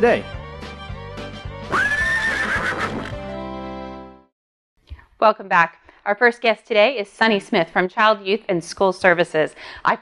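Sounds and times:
background music: 0.0s - 4.3s
horse whinnying: 1.7s - 3.2s.

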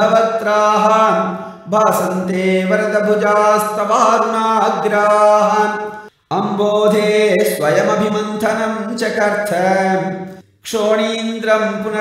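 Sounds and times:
man chanting verses: 0.0s - 12.0s.

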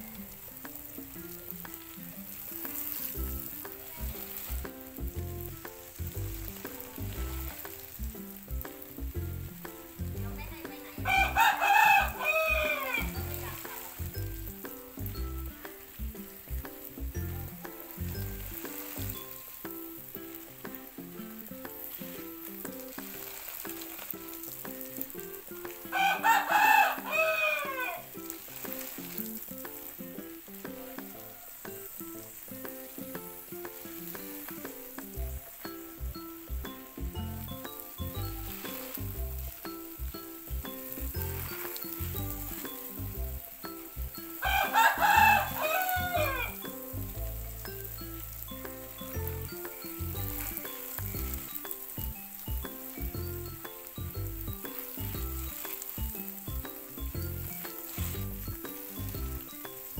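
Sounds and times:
water spraying hiss: 0.0s - 59.9s
rooster crowing: 11.1s - 14.0s, 25.9s - 28.2s, 44.4s - 46.8s.

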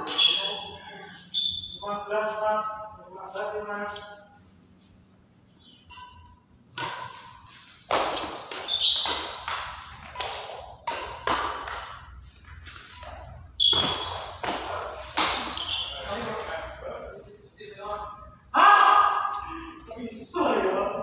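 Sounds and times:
rackets hitting shuttlecock: 0.0s - 0.6s, 5.8s - 16.2s.

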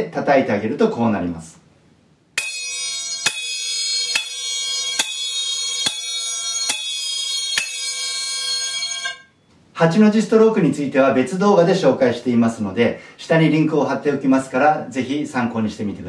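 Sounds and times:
hand cymbals clashing and ringing: 2.4s - 9.4s.

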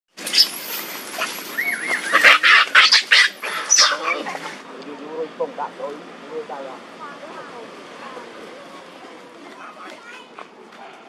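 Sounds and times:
monkeys screaming: 0.2s - 4.6s.

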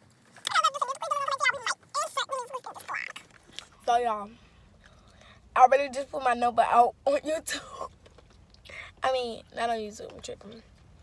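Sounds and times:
girl talking: 0.4s - 4.4s, 5.5s - 7.9s, 8.7s - 10.7s.

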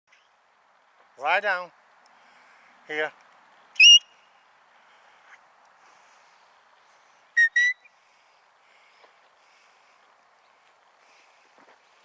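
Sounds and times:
short sharp whistle blasts: 3.8s - 4.2s, 7.4s - 7.9s.

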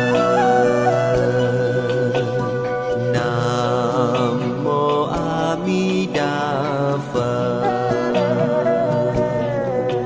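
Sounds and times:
devotional chant sung to music: 0.0s - 9.7s.

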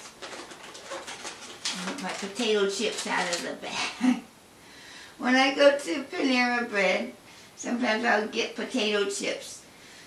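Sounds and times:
chip bag crinkling: 0.0s - 3.9s.

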